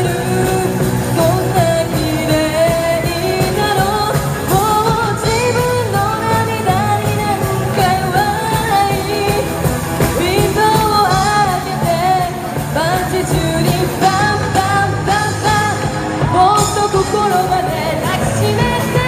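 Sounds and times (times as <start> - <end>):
drums: 0.0 - 19.0
electric guitars: 0.0 - 19.0
woman singing: 0.0 - 19.0.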